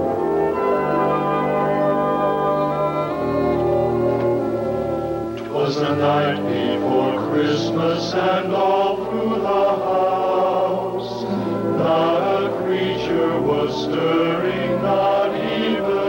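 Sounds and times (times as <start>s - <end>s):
choir singing softly: 0.0s - 16.0s.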